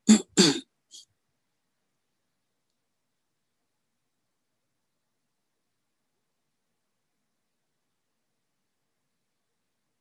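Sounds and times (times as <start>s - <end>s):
person clearing throat: 0.0s - 0.7s.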